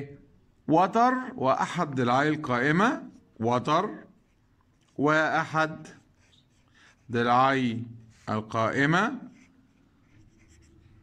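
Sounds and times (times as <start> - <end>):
man speaking: 0.0 - 4.2, 5.0 - 6.1, 7.1 - 9.5
pen scratching on paper: 5.8 - 7.2, 9.2 - 11.0.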